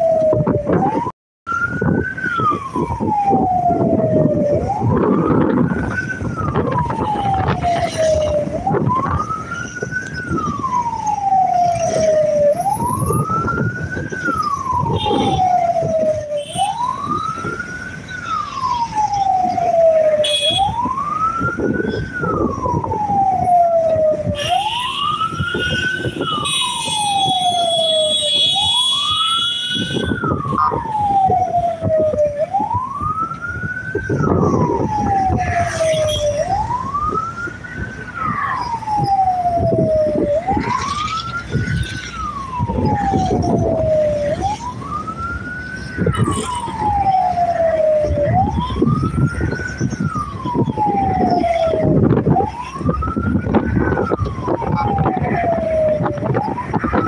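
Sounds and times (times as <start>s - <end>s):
motorcycle engines: 0.0s - 57.0s
road traffic rumble: 0.0s - 57.0s
wailing vehicle siren: 0.0s - 57.0s.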